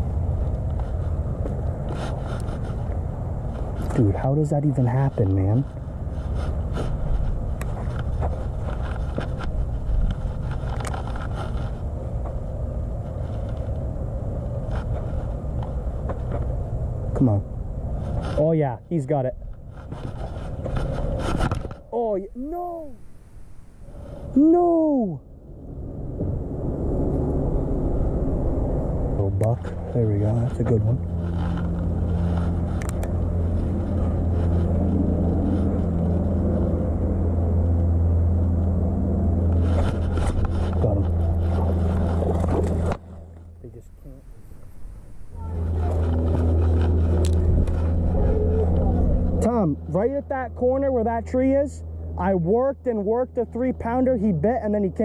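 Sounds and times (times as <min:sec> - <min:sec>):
steady low hum: 0:00.0 - 0:55.0
fishing reel scraping and rustling: 0:04.8 - 0:11.9, 0:19.6 - 0:21.9, 0:29.6 - 0:36.7, 0:39.5 - 0:43.3, 0:45.3 - 0:49.4.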